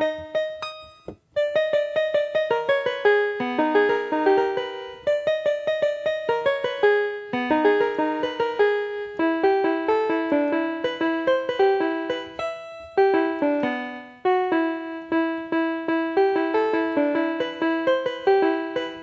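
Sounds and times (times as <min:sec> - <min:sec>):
fast piano playing: 0:00.0 - 0:19.0.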